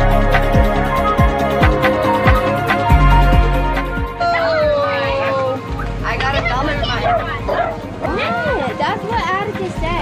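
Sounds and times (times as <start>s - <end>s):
background music: 0.0s - 10.0s
dog yelping: 4.2s - 8.6s
children chattering: 4.2s - 10.0s
dog barking: 6.9s - 8.3s.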